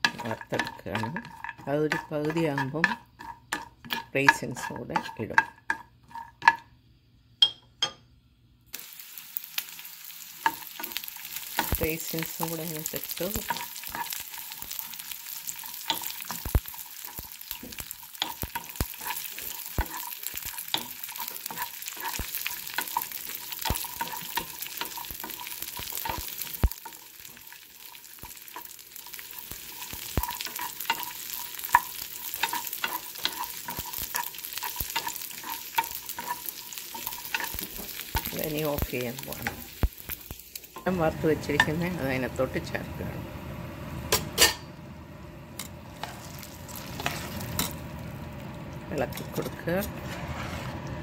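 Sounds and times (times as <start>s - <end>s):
wooden spatula scraping a pan: 0.0s - 6.6s, 10.4s - 40.9s, 46.0s - 47.6s, 49.3s - 51.0s
nuts frying in a pan: 0.0s - 6.7s, 8.7s - 43.5s, 45.6s - 49.9s.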